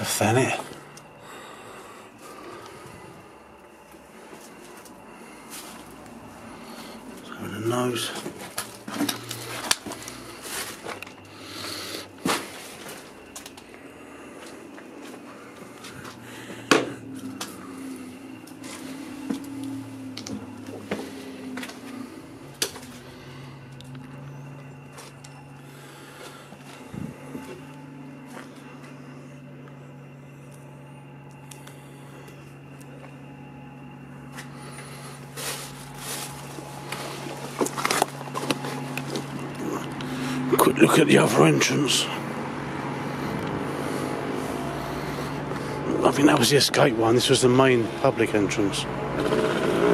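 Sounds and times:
low steady hum: 0.0s - 49.9s.

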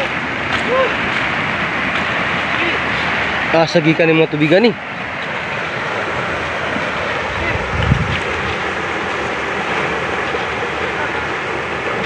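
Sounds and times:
flooded river rushing: 0.0s - 12.0s
wind on microphone: 5.0s - 12.0s.

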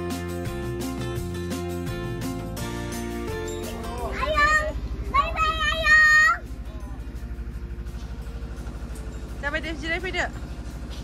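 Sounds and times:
background music: 0.0s - 11.0s
boat engine pulsing: 0.0s - 11.0s.

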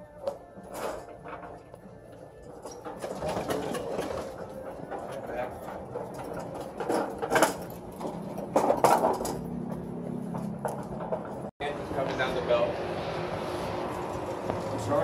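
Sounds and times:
hand truck rolling and rattling: 0.2s - 12.6s
sharp metal clatters: 2.4s - 9.8s.

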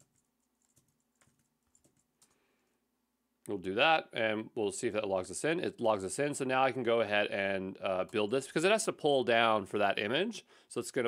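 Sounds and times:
faint keyboard typing: 0.0s - 2.8s.

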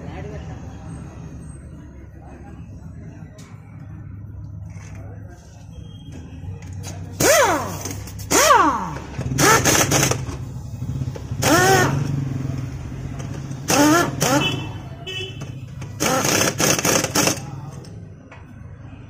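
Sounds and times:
pneumatic impact wrench bursts: 7.1s - 10.5s, 11.4s - 12.1s, 13.6s - 14.7s, 15.8s - 17.7s.

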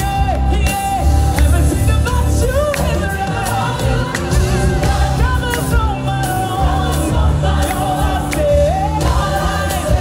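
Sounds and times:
bass accompaniment: 0.0s - 10.0s
lead singer on microphone: 0.0s - 10.0s
choir singing: 2.6s - 10.0s.

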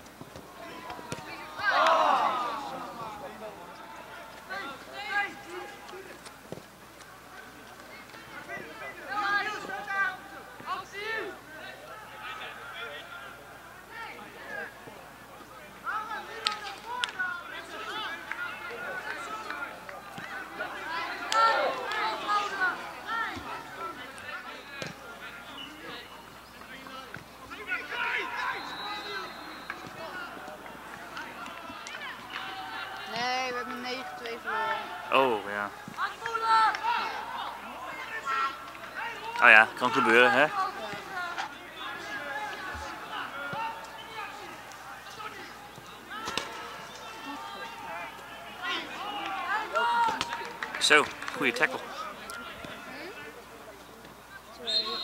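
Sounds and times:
football players shouting: 0.4s - 6.2s, 15.8s - 53.2s.

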